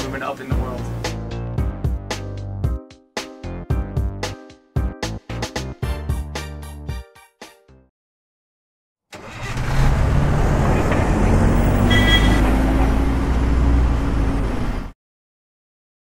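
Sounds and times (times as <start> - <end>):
vehicle engine revving: 9.2 - 14.9
road noise: 9.2 - 15.0.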